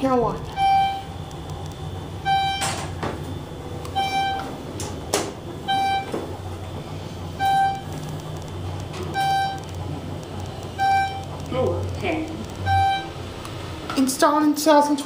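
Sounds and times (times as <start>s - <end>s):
low elevator hum: 0.0s - 15.0s
elevator short beeps: 0.4s - 1.2s, 2.0s - 8.0s, 9.0s - 9.7s, 10.7s - 11.4s, 12.5s - 13.3s
sharp clicks: 1.2s - 1.9s.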